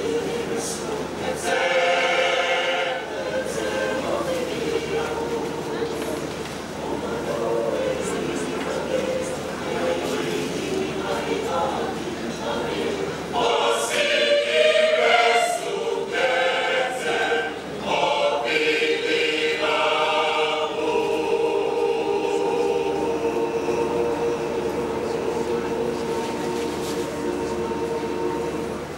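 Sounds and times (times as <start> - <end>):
choir singing: 0.0 - 28.9.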